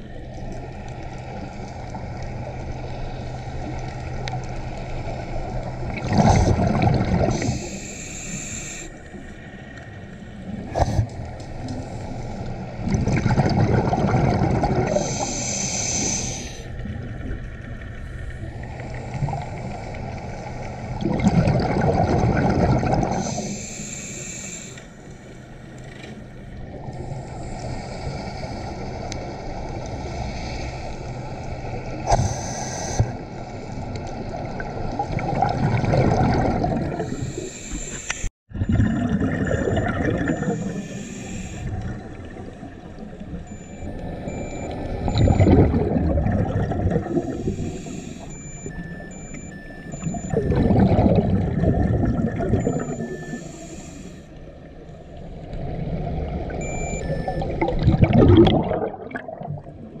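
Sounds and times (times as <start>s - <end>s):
underwater exhaust bubbles gurgling: 0.0s - 60.0s.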